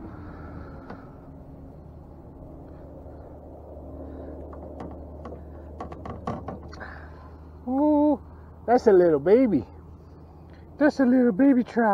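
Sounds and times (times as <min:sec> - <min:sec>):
steady low hum: 0:00.0 - 0:11.9.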